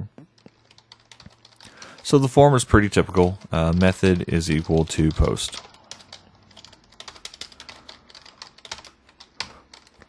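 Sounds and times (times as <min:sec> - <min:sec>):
keyboard typing: 0:00.3 - 0:10.0.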